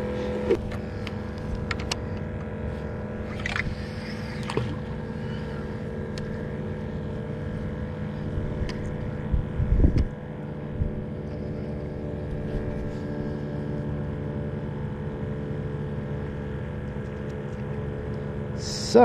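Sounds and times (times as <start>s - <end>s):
low rumble on microphone: 0.0s - 18.6s
outboard motor idling: 0.0s - 19.0s.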